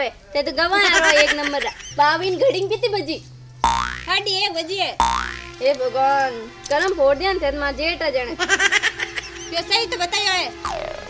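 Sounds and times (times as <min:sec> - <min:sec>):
cartoon boing sound effect: 0:03.6 - 0:04.1, 0:05.0 - 0:05.6, 0:10.6 - 0:11.0.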